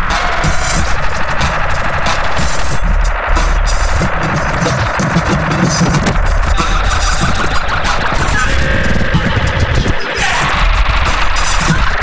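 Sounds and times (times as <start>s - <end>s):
harsh electronic noise music: 0.0s - 12.0s
heavy low rumble: 0.0s - 12.0s
rapid stuttering crackle: 0.0s - 12.0s.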